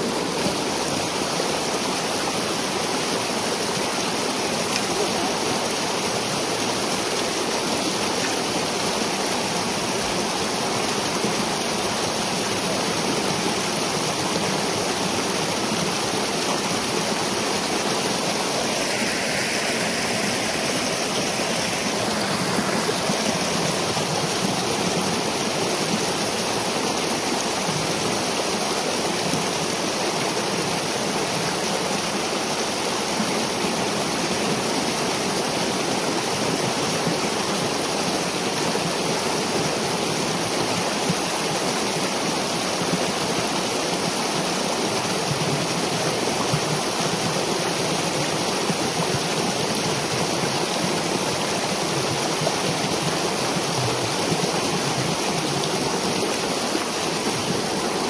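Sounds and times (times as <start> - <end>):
water rushing through dam breach: 0.0 - 58.0.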